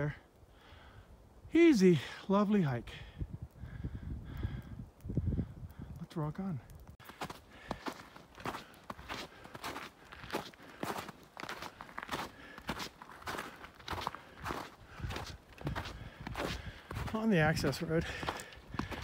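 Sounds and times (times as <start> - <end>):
footsteps crunching on snow: 7.0 - 19.0.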